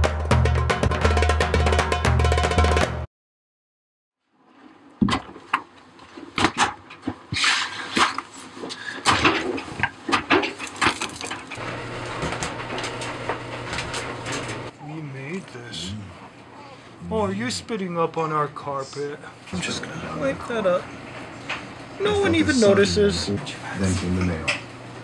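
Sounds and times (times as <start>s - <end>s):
steady low hum: 11.6s - 25.0s.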